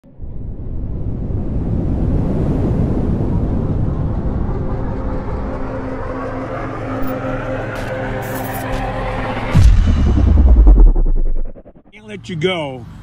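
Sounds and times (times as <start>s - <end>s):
deep rumbling swell: 0.1s - 12.0s.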